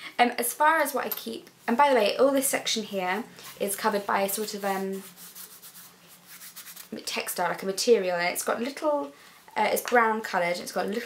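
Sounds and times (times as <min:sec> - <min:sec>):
hands rubbing leather purse: 0:03.4 - 0:06.9.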